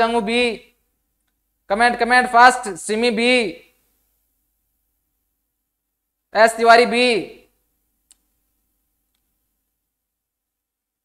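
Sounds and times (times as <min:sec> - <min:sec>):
man speaking: 0:00.0 - 0:00.8, 0:01.7 - 0:03.8, 0:06.3 - 0:07.5.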